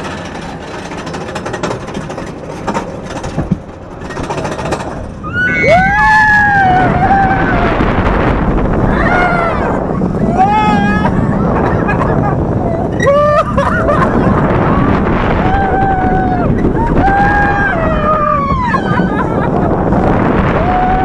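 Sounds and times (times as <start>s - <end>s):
roller coaster clattering up lift: 0.0s - 21.0s
track rumble: 0.0s - 21.0s
wind rush: 0.0s - 21.0s
riders screaming: 5.2s - 8.1s, 8.8s - 19.6s.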